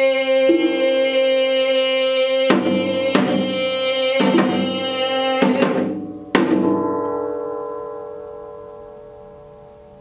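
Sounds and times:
struck percussion ringing: 0.4 - 10.0.

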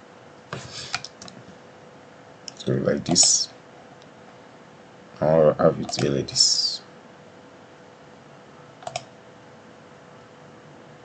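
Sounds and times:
faint steady hum: 0.0 - 11.0
keyboard and mouse clicks: 0.9 - 1.4, 5.8 - 6.1, 8.8 - 9.1.

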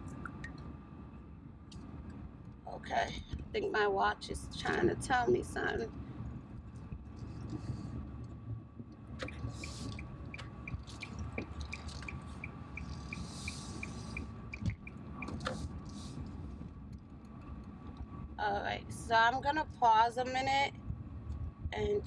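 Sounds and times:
car road noise rumble: 0.0 - 22.0.

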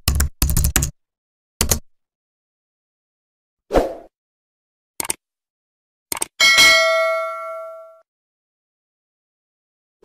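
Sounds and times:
notification bell ding: 6.4 - 8.0.

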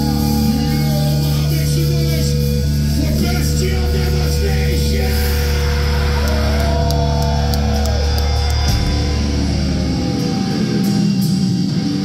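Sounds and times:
distorted guitars and bass: 0.0 - 12.0
drums and cymbal hits: 0.0 - 12.0.

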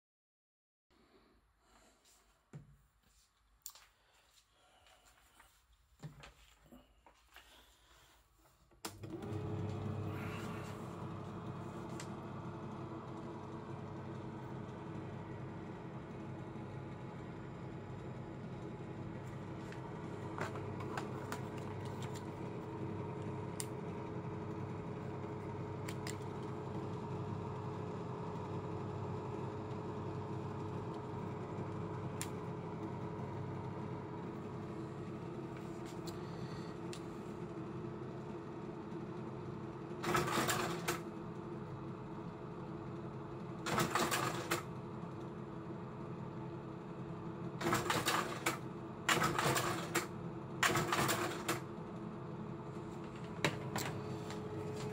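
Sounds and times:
projector fan humming: 8.8 - 54.9.

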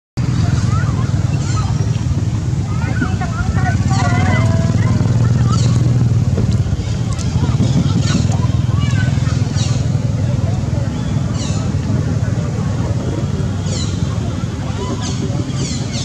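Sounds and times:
low motor-like hum: 0.2 - 16.0.

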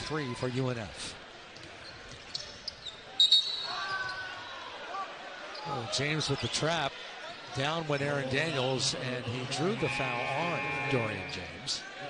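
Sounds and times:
arena noise: 0.0 - 12.0
sneaker squeaks: 1.8 - 4.3
referee's whistle: 3.2 - 4.2, 9.6 - 11.5.

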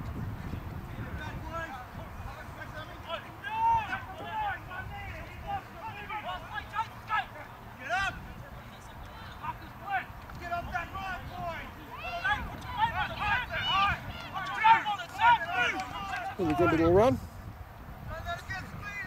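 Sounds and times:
distant people shouting: 1.2 - 17.0.

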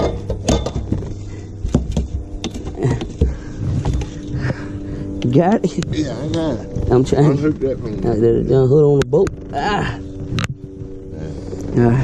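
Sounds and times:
camera movement rumble: 0.0 - 12.0.

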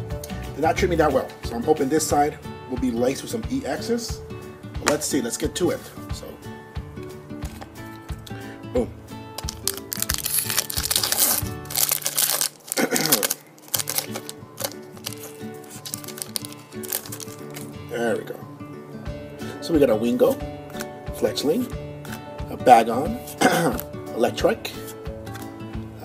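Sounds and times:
background music: 0.0 - 26.0
foil wrapper tearing and crinkling: 9.4 - 17.8, 23.3 - 23.9.

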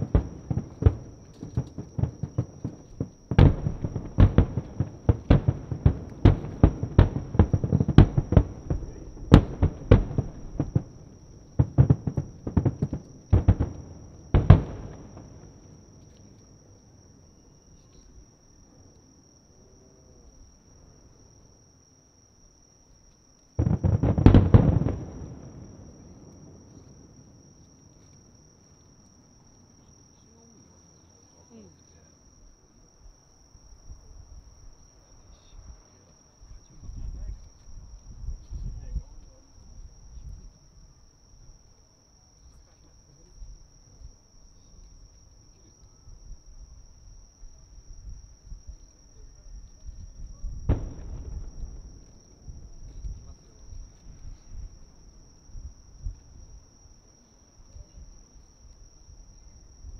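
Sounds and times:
fireworks bursting: 0.0 - 16.4, 23.6 - 27.6, 50.5 - 58.2
high insect trill: 0.0 - 59.9
loud rumbling boom: 3.3 - 15.6, 50.6 - 54.7.

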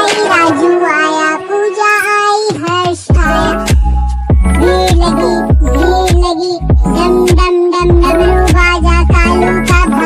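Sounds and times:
child-like singing voice: 0.0 - 3.8, 4.5 - 10.0
deep bass beat: 3.1 - 10.0.

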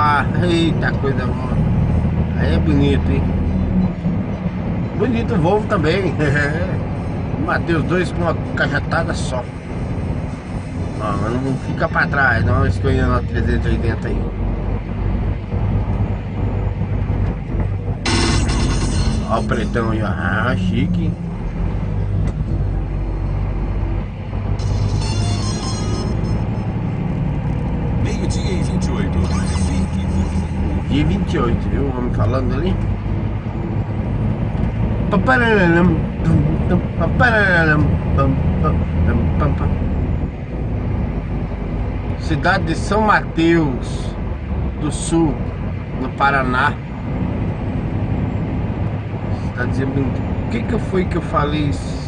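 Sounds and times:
truck engine and road drone: 0.0 - 52.0.

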